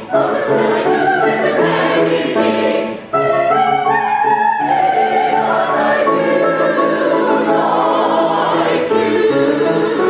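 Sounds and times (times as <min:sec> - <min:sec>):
mixed chorus singing operetta: 0:00.0 - 0:10.0.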